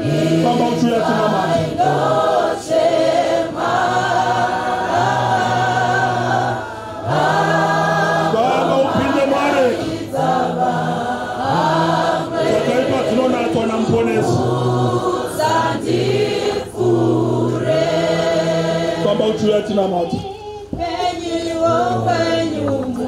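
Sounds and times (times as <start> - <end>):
congregation singing gospel chorus: 0.0 - 23.0.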